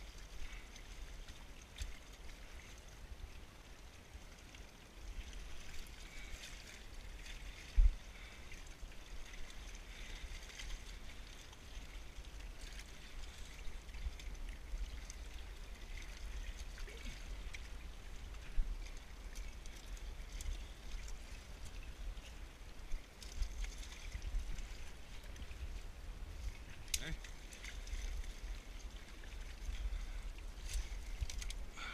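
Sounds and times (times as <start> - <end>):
water lapping among rocks: 0.0 - 31.9.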